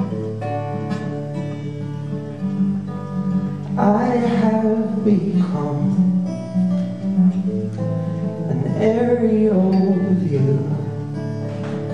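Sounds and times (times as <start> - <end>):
acoustic guitar chords: 0.0 - 11.9
man singing: 3.8 - 7.5, 8.5 - 11.2.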